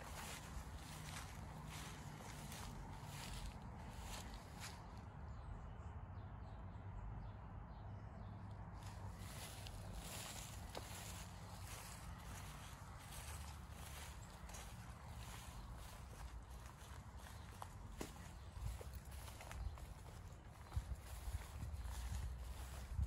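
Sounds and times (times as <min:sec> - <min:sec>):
footsteps through tall grass: 0:00.0 - 0:05.0, 0:08.8 - 0:23.0.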